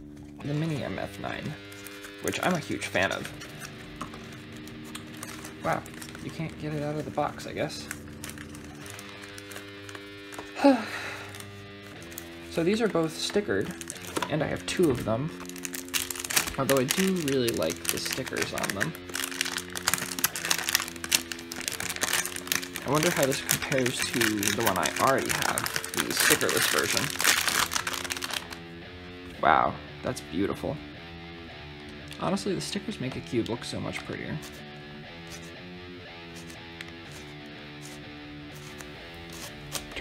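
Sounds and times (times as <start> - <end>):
background music with low notes: 0.0 - 40.0
plastic wrapping crinkling: 1.3 - 28.6, 36.2 - 40.0.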